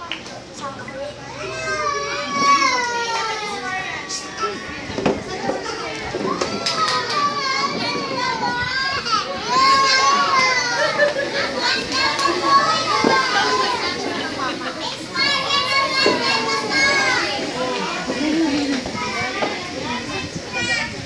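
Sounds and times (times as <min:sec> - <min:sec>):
young children chattering: 0:00.0 - 0:21.0.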